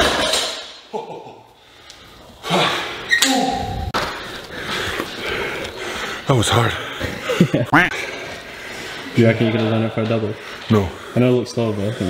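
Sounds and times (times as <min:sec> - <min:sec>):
barbell plates thudding on floor: 0:00.0 - 0:00.8.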